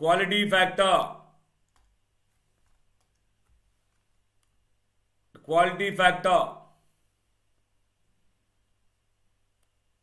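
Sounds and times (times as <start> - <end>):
man speaking: 0.0 - 1.4, 5.4 - 6.8
faint clicks: 2.6 - 4.6.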